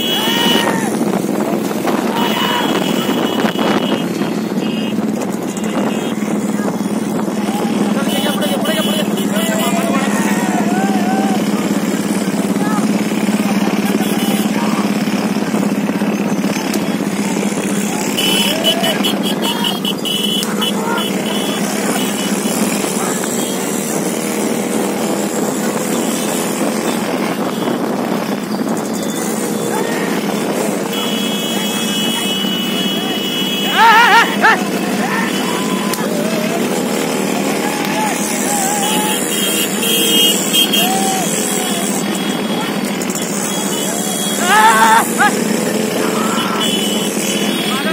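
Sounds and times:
people talking: 0.0 - 4.9, 5.5 - 28.4, 29.3 - 47.9
motorcycle engines humming: 0.0 - 47.9.

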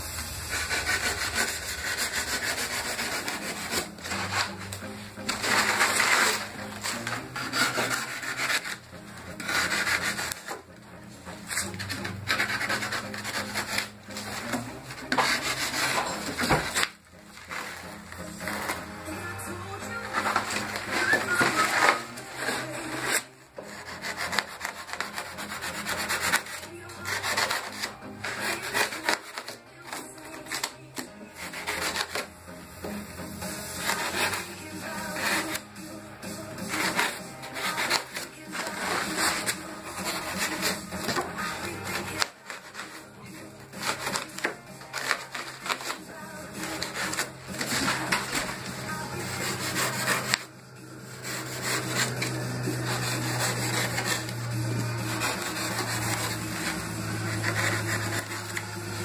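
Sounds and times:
knife cutting styrofoam: 0.0 - 10.7, 11.3 - 59.0.

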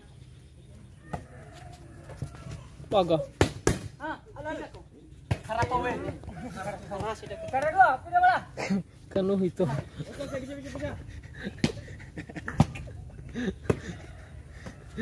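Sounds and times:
hands hitting volleyball: 5.2 - 6.2.

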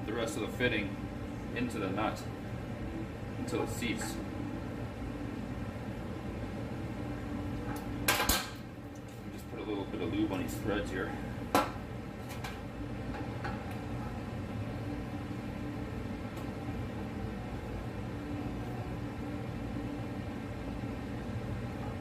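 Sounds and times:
steady low hum: 0.0 - 22.0.

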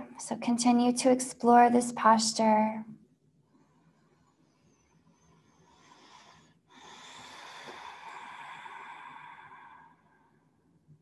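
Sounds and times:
woman breathing: 3.6 - 10.6.

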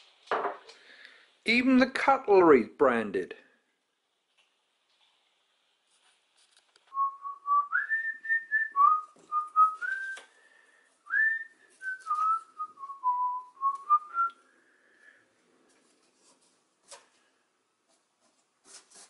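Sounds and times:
person whistling a tune: 6.9 - 10.3, 11.1 - 14.4.

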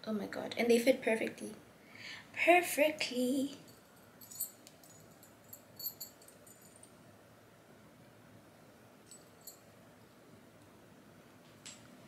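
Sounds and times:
finger rings clinking: 3.6 - 7.0, 9.0 - 9.7.

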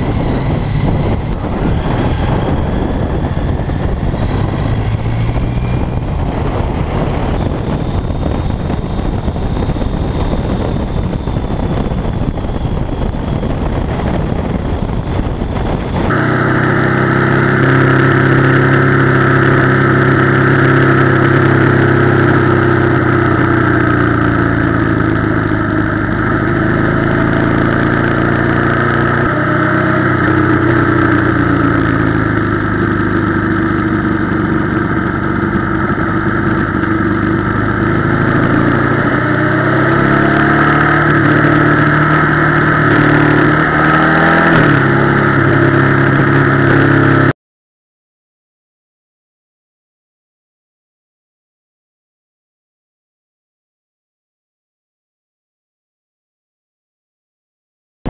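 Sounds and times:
motorcycle engine running: 0.0 - 47.4.

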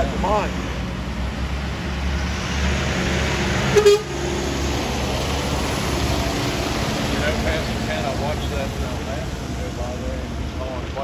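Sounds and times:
wheel loader diesel engine rumble: 0.0 - 11.0.

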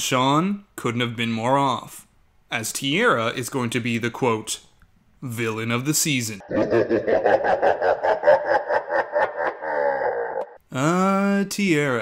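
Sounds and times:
woman laughing loudly: 6.5 - 10.5.

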